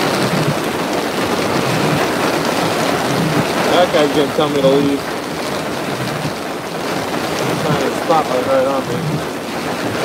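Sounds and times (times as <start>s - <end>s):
rain and wind on a car: 0.0s - 10.0s.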